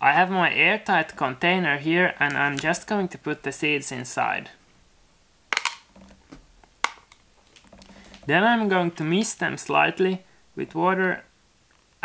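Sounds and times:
objects clicking and tapping: 0:05.5 - 0:08.3.

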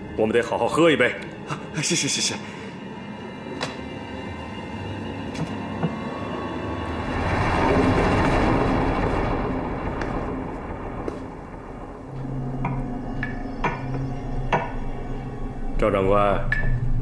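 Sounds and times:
low rumbling noise: 0:02.4 - 0:17.0.

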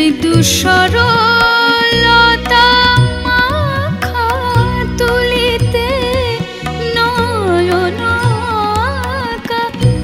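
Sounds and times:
instrumental accompaniment: 0:00.0 - 0:10.0
woman singing: 0:00.0 - 0:10.0.

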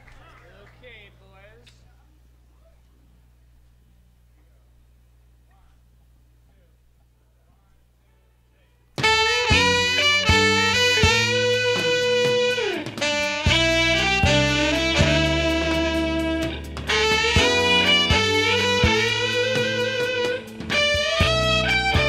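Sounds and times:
faint low hum: 0:00.0 - 0:09.0
live jazz-funk band playing: 0:09.0 - 0:22.0.

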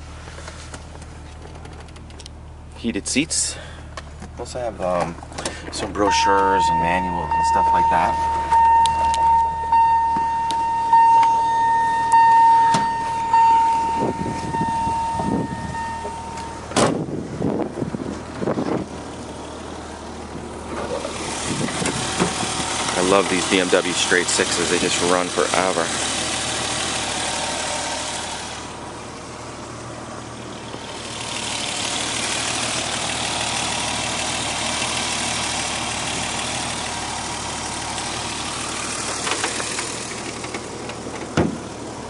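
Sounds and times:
car engine idling: 0:00.0 - 0:42.0
electronic warning tone: 0:06.0 - 0:16.7
car door shutting with a thud: 0:16.7 - 0:17.1, 0:41.2 - 0:41.6.

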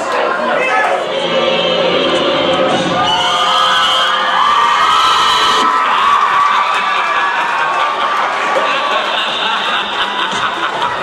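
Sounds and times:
audience noise: 0:00.0 - 0:11.0
music playing: 0:00.8 - 0:06.0.

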